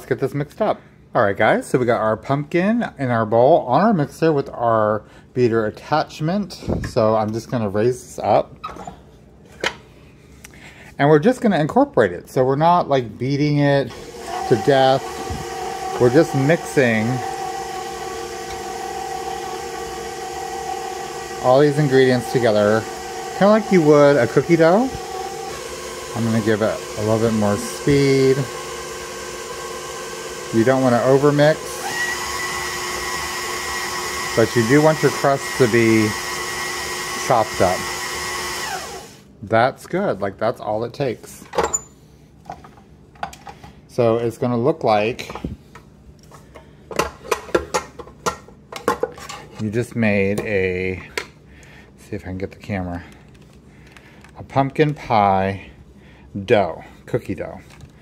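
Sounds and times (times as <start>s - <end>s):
stand mixer motor whining: 13.9s - 39.2s.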